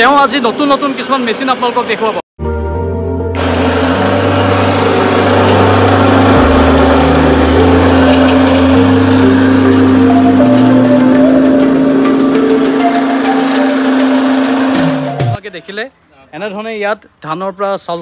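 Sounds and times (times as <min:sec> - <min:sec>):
background music: 0:02.4 - 0:15.4
rice mill motor hum: 0:03.4 - 0:15.4.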